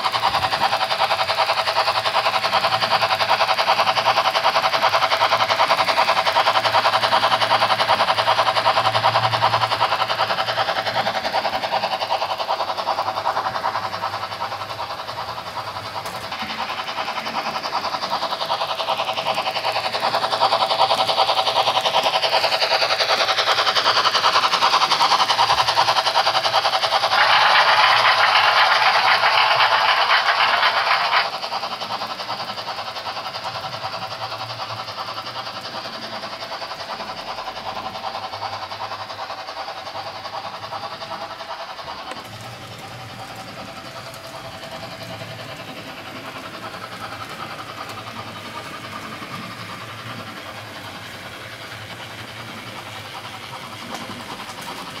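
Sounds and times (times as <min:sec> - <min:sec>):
model steam locomotive sounds: 0:00.0 - 0:55.0.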